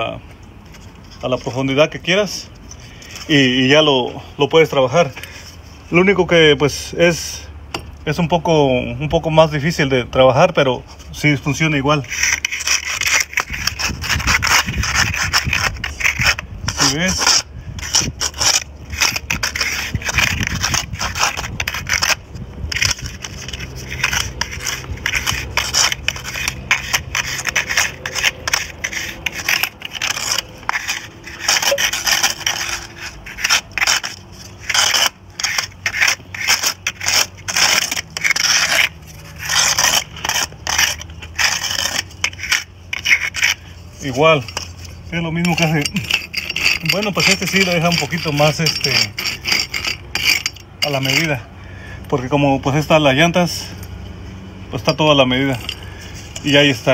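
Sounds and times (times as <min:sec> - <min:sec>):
nail scraping mortar joints: 0:09.5 - 0:51.5, 0:54.8 - 0:56.9.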